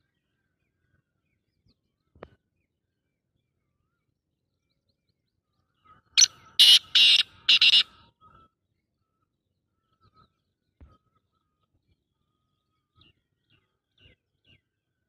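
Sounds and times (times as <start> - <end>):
francolin harsh call: 6.6 - 7.9.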